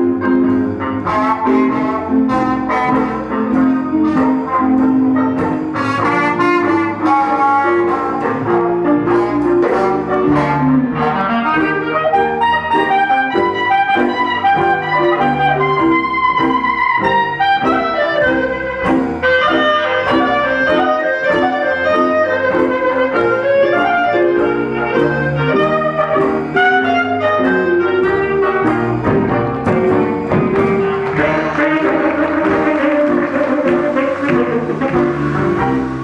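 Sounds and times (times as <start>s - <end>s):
clarinet lead line: 0.0s - 36.0s
double bass: 0.0s - 36.0s
drums: 0.0s - 36.0s
trombone: 0.0s - 36.0s.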